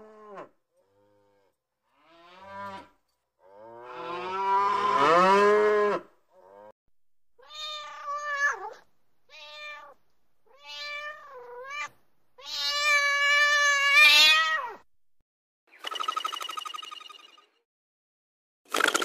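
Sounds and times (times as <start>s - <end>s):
cat meowing: 7.4s - 14.9s.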